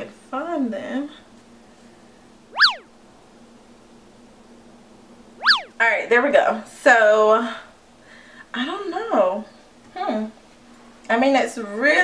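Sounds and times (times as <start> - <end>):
faint steady hum: 0.0 - 12.0
cartoon boing sound effect: 2.6 - 2.9, 5.4 - 5.8.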